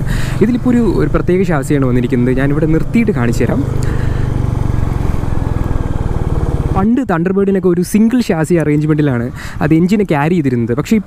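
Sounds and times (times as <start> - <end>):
motorcycle engine running steadily: 0.0 - 11.0
wind and road noise: 0.0 - 11.0.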